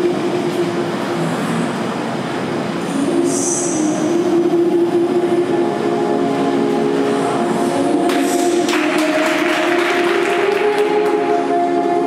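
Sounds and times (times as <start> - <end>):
music over sound system: 2.9 - 12.0
audience applause: 8.1 - 11.4.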